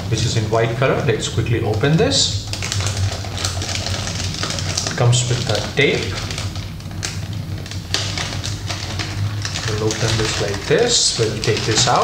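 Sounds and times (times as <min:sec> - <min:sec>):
plastic bag crinkling: 0:00.0 - 0:12.0
steady low hum: 0:00.0 - 0:12.0.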